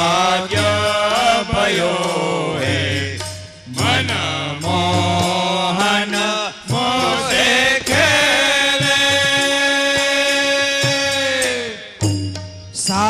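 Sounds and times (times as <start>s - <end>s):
men singing devotional chant: 0.0s - 12.2s, 12.8s - 13.0s
harmonium: 0.0s - 13.0s
tabla: 0.0s - 13.0s.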